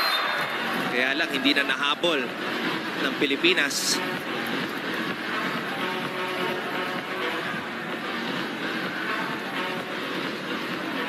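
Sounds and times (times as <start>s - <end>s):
crowd voices humming: 0.0s - 11.0s
faint music: 0.0s - 11.0s.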